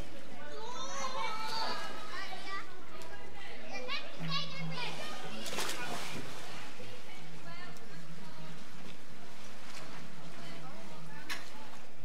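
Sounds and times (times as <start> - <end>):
children shouting and playing: 0.0 - 7.8
water splash: 4.8 - 6.8.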